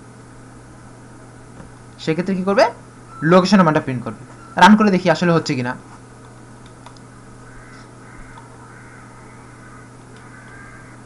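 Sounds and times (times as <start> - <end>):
steady electrical hum: 0.0 - 11.0
computer mouse clicks: 6.6 - 7.1, 8.3 - 8.5, 10.1 - 10.6
faint bird calls: 7.4 - 11.0.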